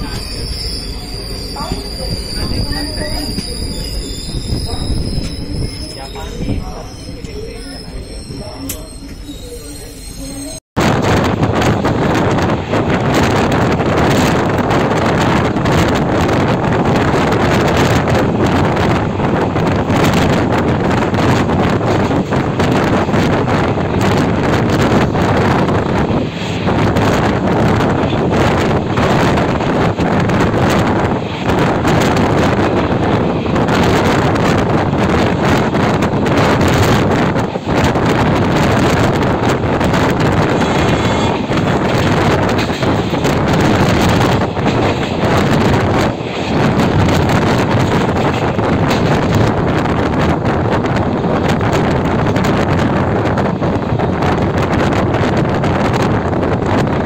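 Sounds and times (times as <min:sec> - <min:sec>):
wind buffeting microphone: 0:00.0 - 0:08.6, 0:10.0 - 0:57.0
train rolling on rails: 0:00.0 - 0:57.0.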